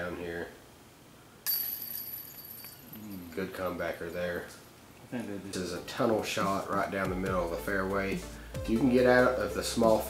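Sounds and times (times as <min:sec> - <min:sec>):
disc striking metal chains: 0:01.5 - 0:03.7.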